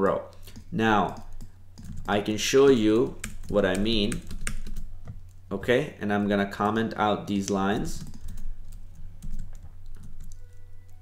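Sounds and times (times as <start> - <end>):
keyboard keys tapping: 0.3 - 5.3, 7.4 - 11.0
faint thin steady tones: 6.8 - 11.0.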